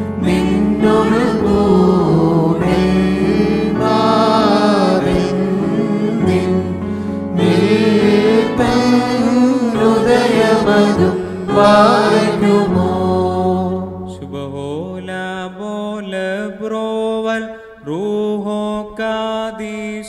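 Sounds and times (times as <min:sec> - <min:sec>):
voices singing over a drone: 0:07.4 - 0:18.6.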